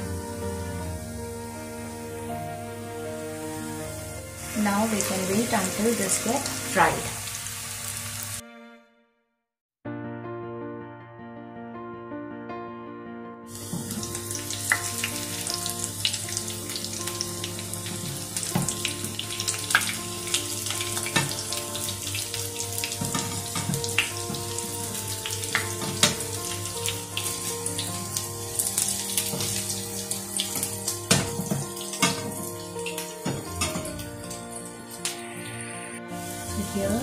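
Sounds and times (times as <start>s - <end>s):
soft background music: 0.0s - 8.8s, 9.9s - 37.0s
cutlets sizzling in hot oil: 3.2s - 8.4s, 13.5s - 35.2s, 36.2s - 37.0s.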